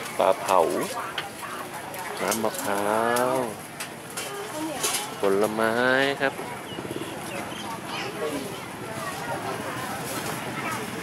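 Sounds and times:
faint market background: 0:00.0 - 0:11.0.

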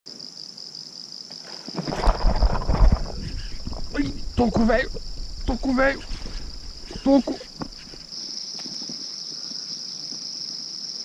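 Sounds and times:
insects chirring: 0:00.1 - 0:11.0
wind buffeting microphone: 0:01.9 - 0:08.1.

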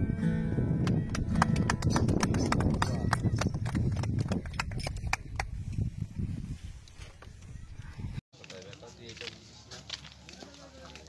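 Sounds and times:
people talking low: 0:01.2 - 0:05.6.

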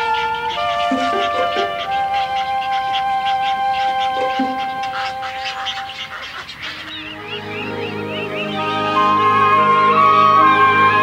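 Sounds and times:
quick chirps: 0:00.0 - 0:09.0
film score music: 0:00.0 - 0:11.0
heron chicks calling: 0:00.0 - 0:11.0.

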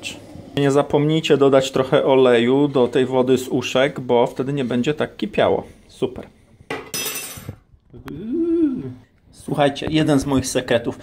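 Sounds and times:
man humming: 0:07.9 - 0:09.0.

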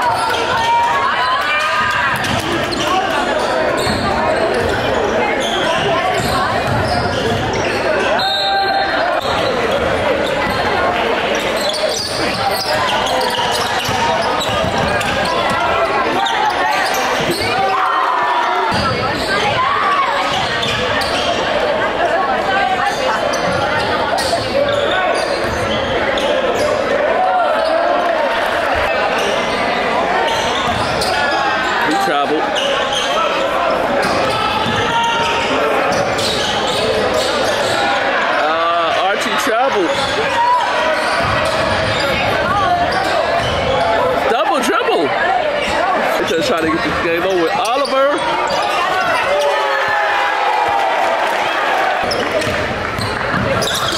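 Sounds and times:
voices and shouts in a hall: 0:00.0 - 0:53.9.

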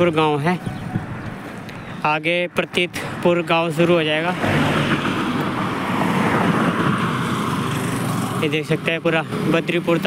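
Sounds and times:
cars passing on asphalt: 0:00.0 - 0:10.0.

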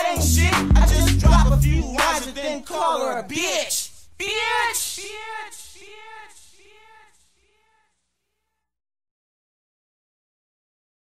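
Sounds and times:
echoing pitched vocal sound: 0:00.0 - 0:07.1.

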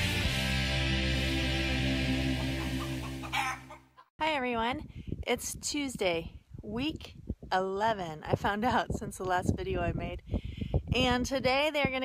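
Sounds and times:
chicken clucking: 0:02.4 - 0:04.1.

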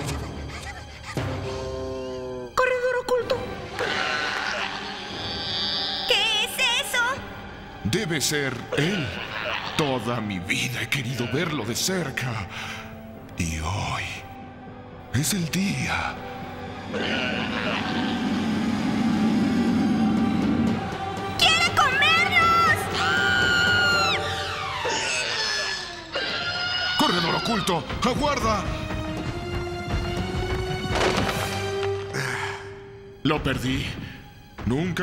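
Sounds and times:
soft background music: 0:00.0 - 0:35.0
bleat-like cartoon vocal cries: 0:08.8 - 0:10.0, 0:16.9 - 0:18.3, 0:24.4 - 0:27.8
low creature growl: 0:16.9 - 0:20.5.

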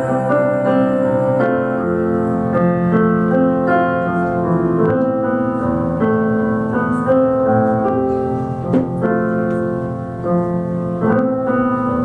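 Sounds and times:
keyboard playing piano chords: 0:00.0 - 0:12.0.

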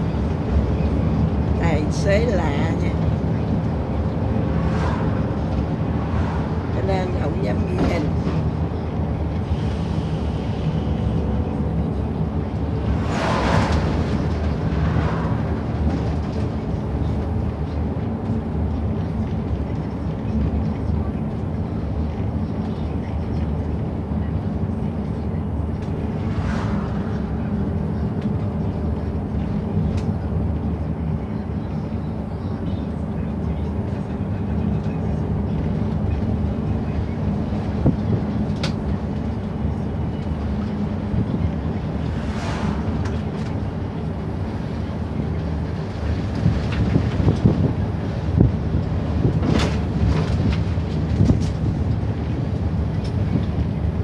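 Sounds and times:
bus engine droning: 0:00.0 - 0:54.0.

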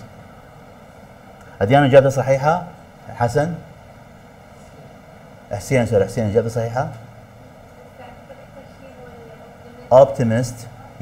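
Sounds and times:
steady line hum: 0:00.0 - 0:11.0.

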